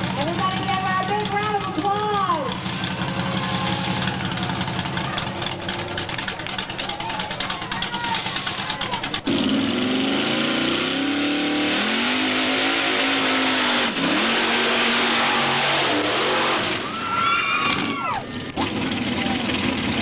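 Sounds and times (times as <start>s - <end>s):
vehicle churning through mud: 0.0s - 20.0s
engine revving high: 8.1s - 20.0s.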